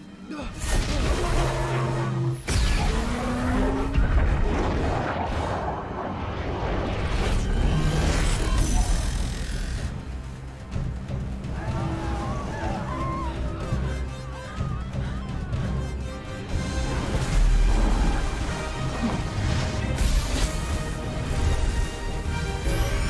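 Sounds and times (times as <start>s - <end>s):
dramatic orchestral score: 0.0s - 23.0s.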